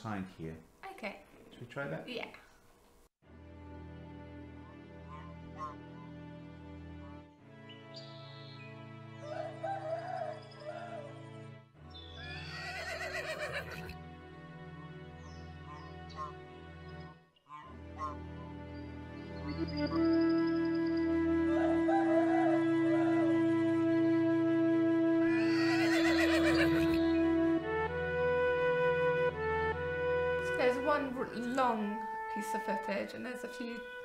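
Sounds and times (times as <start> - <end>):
horse whinny: 12.2 - 14.0, 25.2 - 27.1
wavering animal-call samples: 25.3 - 27.2.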